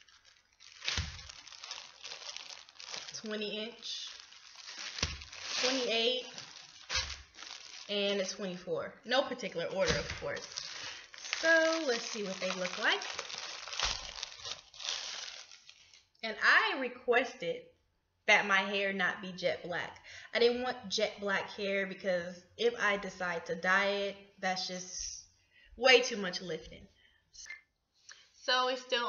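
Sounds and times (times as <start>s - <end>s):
plastic bags crinkling: 0.0s - 8.6s, 9.2s - 16.1s.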